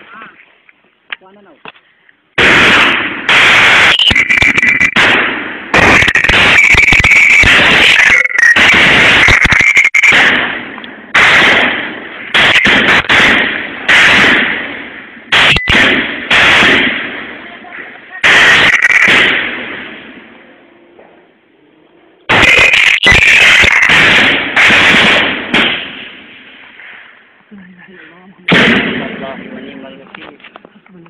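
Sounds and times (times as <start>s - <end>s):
gunshots with echo: 2.4s - 20.4s, 22.3s - 27.0s, 28.5s - 29.9s.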